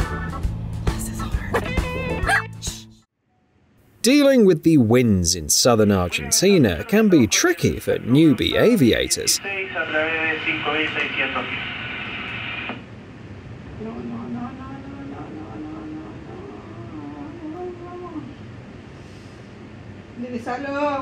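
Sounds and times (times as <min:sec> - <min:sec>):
steady low hum: 0:03.8 - 0:21.0
person talking: 0:04.0 - 0:09.8.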